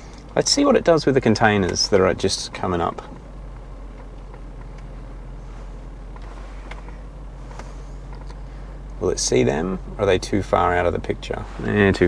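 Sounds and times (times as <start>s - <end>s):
car engine low hum: 0.0s - 12.0s.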